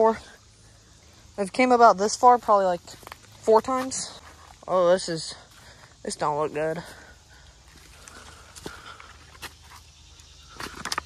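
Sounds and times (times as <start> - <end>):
footsteps in brush: 2.2 - 6.0, 7.6 - 11.0.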